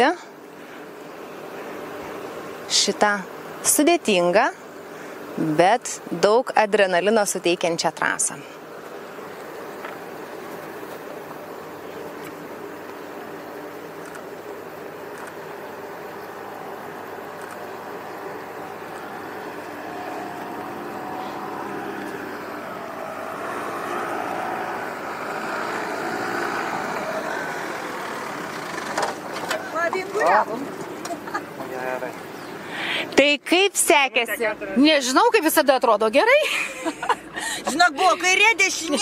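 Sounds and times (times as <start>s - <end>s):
car engine revving: 16.3s - 31.2s.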